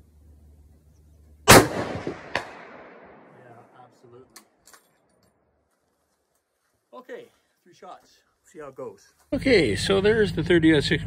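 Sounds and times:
rifle shot: 0:01.4 - 0:03.5.

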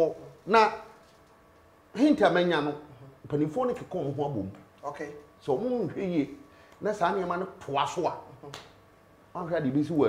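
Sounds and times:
man speaking: 0:00.0 - 0:01.0, 0:02.0 - 0:08.7, 0:09.3 - 0:10.0.

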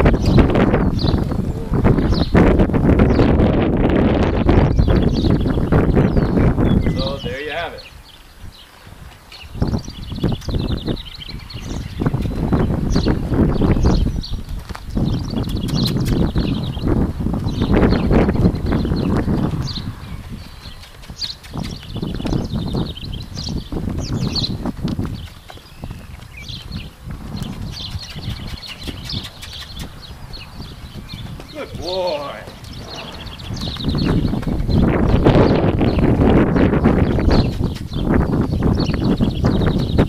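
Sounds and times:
horse hoofbeats on dirt: 0:11.5 - 0:40.0
low rumbling noise: 0:31.8 - 0:36.4.

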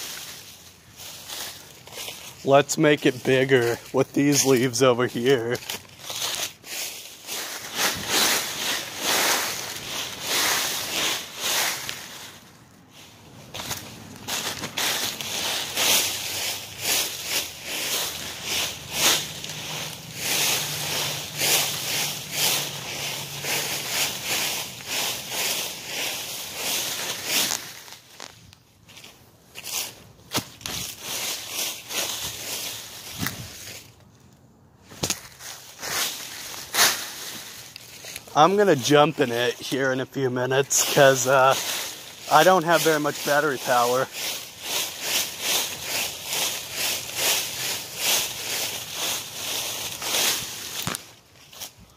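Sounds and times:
dry leaves crackling and rustling: 0:00.0 - 0:51.9.

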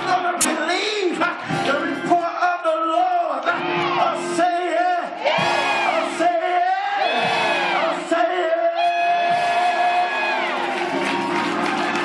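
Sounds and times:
congregation voices: 0:00.0 - 0:10.9.

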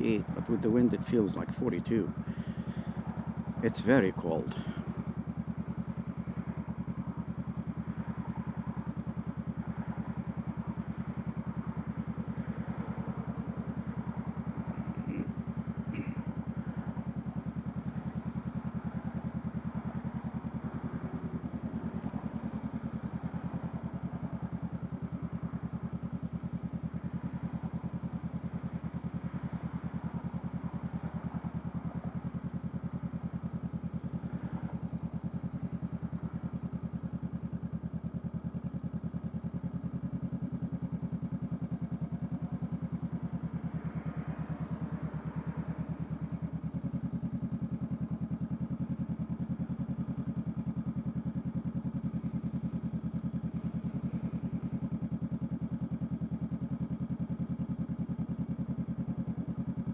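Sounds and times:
motorcycle engine idling: 0:00.0 - 0:59.9.

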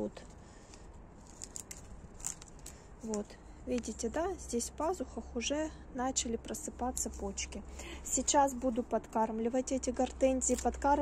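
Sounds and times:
pruning shears snipping: 0:00.7 - 0:04.2, 0:10.3 - 0:11.0.

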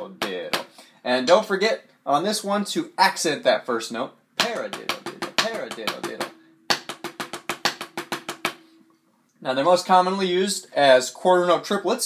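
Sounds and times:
drumsticks on practice pad: 0:04.4 - 0:09.0.

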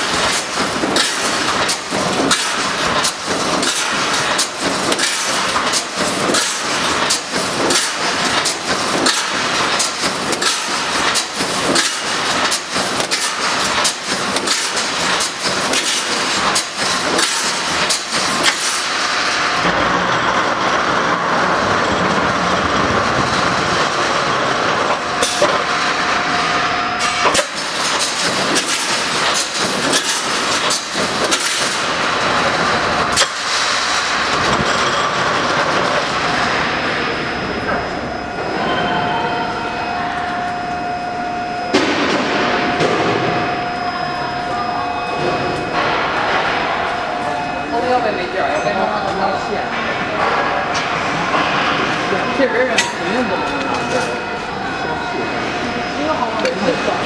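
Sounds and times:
welding heads clacking: 0:00.0 - 0:38.3
machine running noise: 0:00.0 - 0:57.0.

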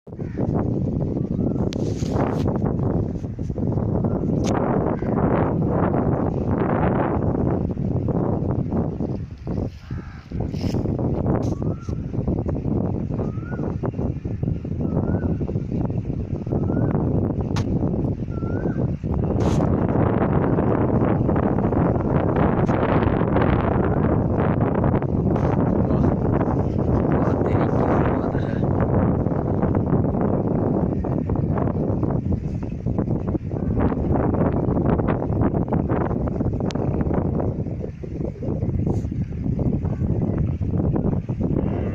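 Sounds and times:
wind buffeting microphone: 0:00.0 - 0:41.9.

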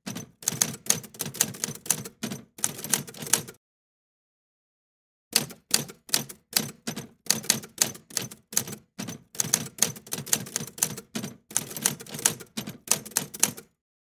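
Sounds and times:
typewriter key clacks: 0:00.0 - 0:03.6, 0:05.4 - 0:13.7.

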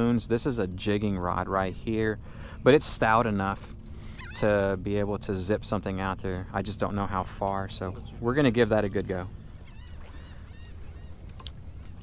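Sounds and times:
water rumble: 0:00.0 - 0:12.0
distant birds calling: 0:01.0 - 0:12.0.

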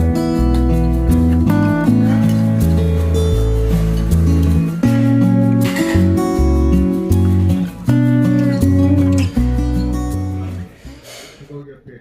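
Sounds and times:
strummed guitar music with bass: 0:00.0 - 0:11.0.

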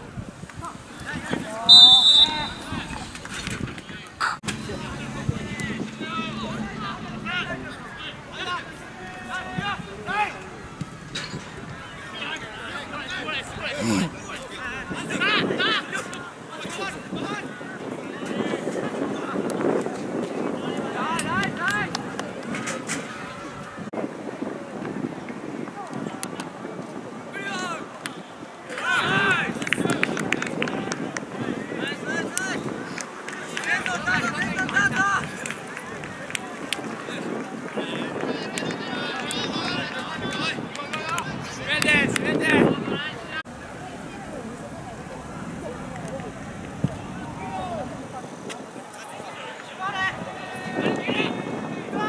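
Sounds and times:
wind buffeting microphone: 0:00.0 - 0:52.0
distant shouts of players: 0:01.6 - 0:03.1.

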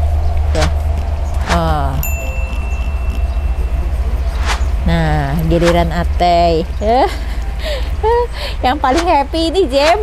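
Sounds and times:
low rumble: 0:00.0 - 0:10.0
bell-like ding: 0:02.0 - 0:04.4.

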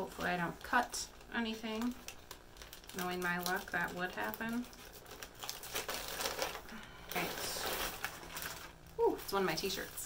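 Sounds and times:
plastic bag crinkling: 0:00.0 - 0:10.0
scissors cutting plastic: 0:01.8 - 0:08.7.

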